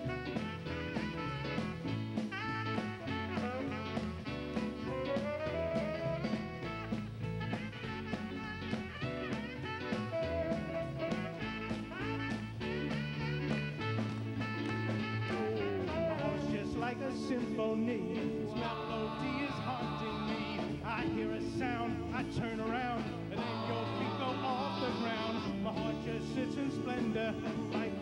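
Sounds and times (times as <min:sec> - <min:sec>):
bass: 0:00.0 - 0:28.0
lead melody line: 0:00.0 - 0:28.0
steady drum beat: 0:00.0 - 0:28.0.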